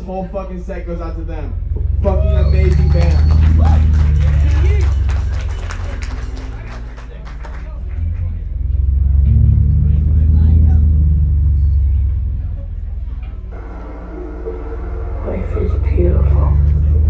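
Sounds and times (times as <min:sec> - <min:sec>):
bass guitar low rumbling note: 0:00.7 - 0:06.7, 0:07.7 - 0:17.0.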